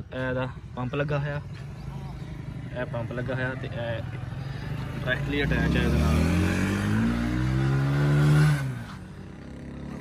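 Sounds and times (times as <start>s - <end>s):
small petrol engine revving: 2.3s - 10.0s.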